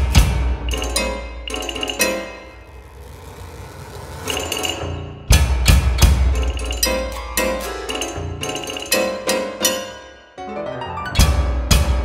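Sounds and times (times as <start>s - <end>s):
percussion ensemble music: 0.0s - 9.8s, 11.1s - 12.0s.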